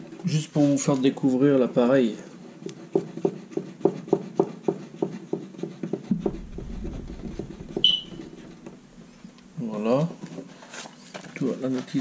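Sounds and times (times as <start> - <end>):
low handling rumble: 6.1 - 9.6
high metallic ping: 7.8 - 8.3.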